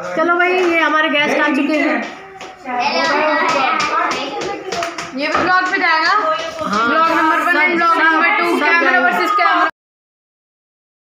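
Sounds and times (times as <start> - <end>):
voices: 0.0 - 9.7
people clapping hands: 0.5 - 7.4.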